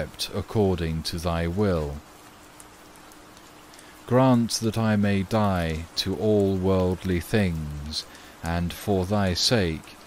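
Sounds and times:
faint steady hiss: 0.0s - 10.0s
faint steady hum: 0.0s - 10.0s.

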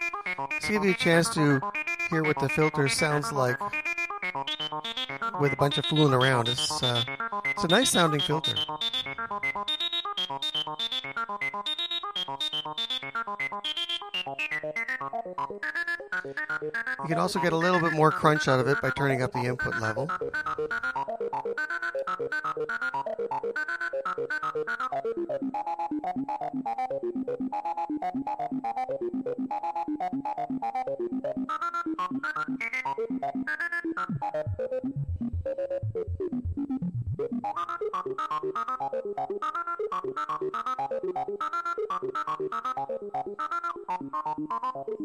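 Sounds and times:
analog synthesizer sequence: 0.0s - 45.0s.

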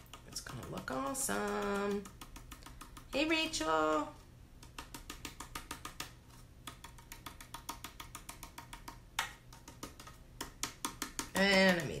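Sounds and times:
hands tapping chalkboard sign: 0.0s - 12.0s.

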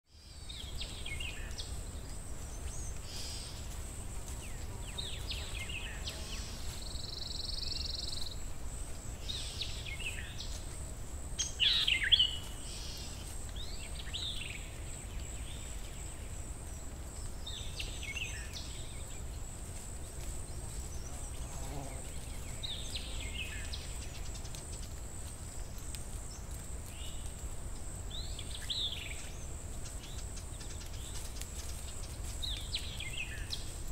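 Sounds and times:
songbirds chirping: 0.0s - 33.9s.

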